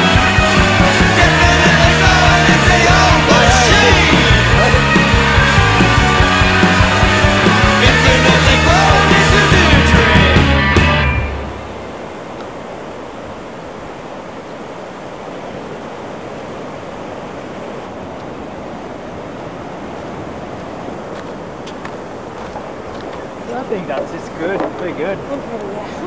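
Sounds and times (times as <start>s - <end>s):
rock music: 0.0s - 11.8s
steady rushing ambient noise: 0.0s - 26.0s.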